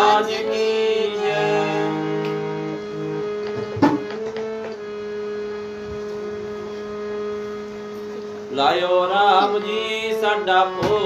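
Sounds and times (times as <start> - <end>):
harmonium sustained chord: 0.0 - 11.0.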